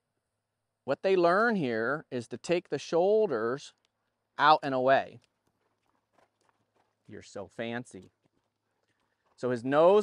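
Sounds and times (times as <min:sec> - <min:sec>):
man speaking: 0:00.9 - 0:03.8, 0:04.4 - 0:05.2, 0:07.1 - 0:08.1, 0:09.4 - 0:10.0
horse hooves on sand: 0:03.6 - 0:10.0.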